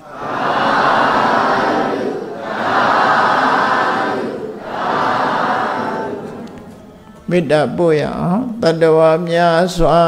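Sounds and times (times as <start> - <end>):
voices chanting in unison: 0.0 - 6.5.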